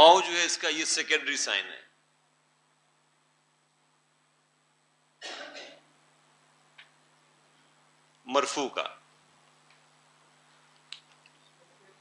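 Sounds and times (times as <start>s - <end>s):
person coughing: 5.2s - 5.9s.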